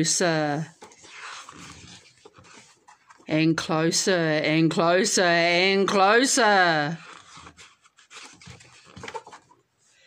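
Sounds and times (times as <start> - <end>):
book page turning: 0.6 - 3.3, 7.0 - 9.6.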